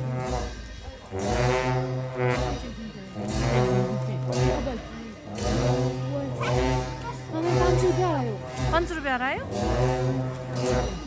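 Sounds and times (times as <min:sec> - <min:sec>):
long horns holding deep notes: 0:00.0 - 0:11.0.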